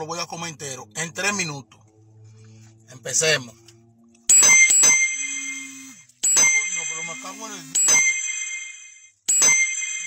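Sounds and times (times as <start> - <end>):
phone notification chime: 4.3 - 10.0.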